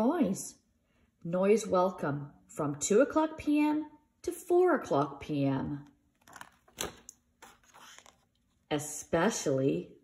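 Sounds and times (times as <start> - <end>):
paper page rustling: 6.2 - 8.6.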